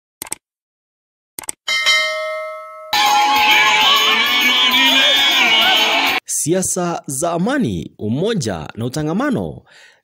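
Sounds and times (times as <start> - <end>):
bell chime: 1.7 - 6.0.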